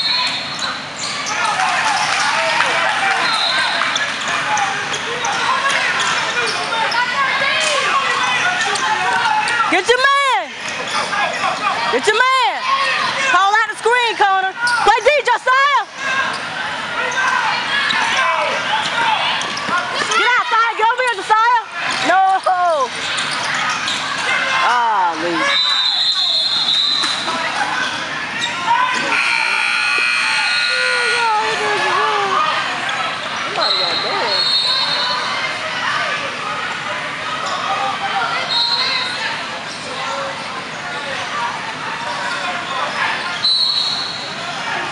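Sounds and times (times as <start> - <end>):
voices shouting: 0.0 - 44.9
referee's whistle: 3.2 - 3.8, 25.4 - 27.2, 29.1 - 31.4, 33.6 - 35.2, 38.5 - 39.2, 43.4 - 44.3.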